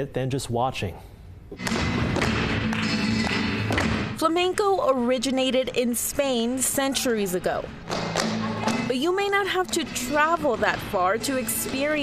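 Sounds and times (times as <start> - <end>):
heeled shoes striking floor: 1.6 - 4.2, 7.8 - 12.0
flamenco music: 1.6 - 4.4, 7.0 - 12.0.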